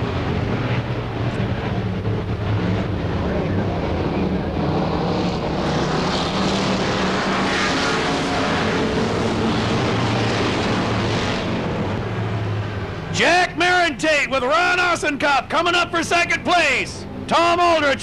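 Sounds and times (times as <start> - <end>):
stock car engines racing: 0.0 - 18.0.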